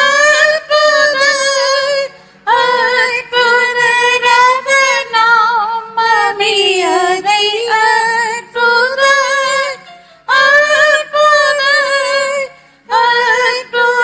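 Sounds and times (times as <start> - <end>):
woman singing a hymn: 0.0 - 14.0.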